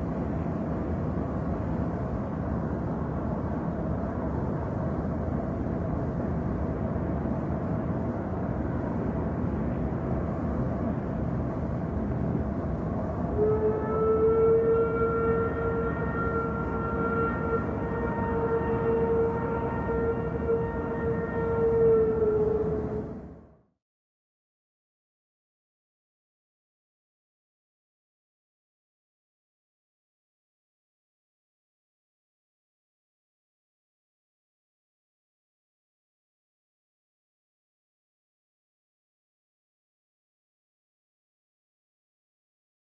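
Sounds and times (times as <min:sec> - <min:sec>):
horn-like tone: 0:13.4 - 0:23.2.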